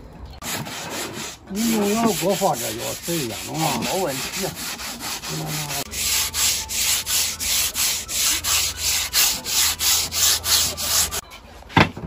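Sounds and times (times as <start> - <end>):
sandpaper rubbing on wood: 0.4 - 11.2.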